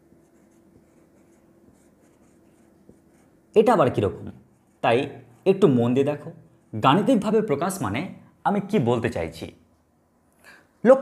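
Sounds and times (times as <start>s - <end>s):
marker pen writing on whiteboard: 0.0s - 7.3s
faint steady hum: 0.0s - 11.0s.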